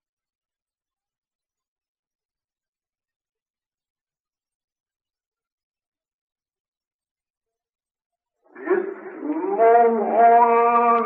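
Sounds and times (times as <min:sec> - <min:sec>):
man chanting recitation: 0:08.6 - 0:11.0.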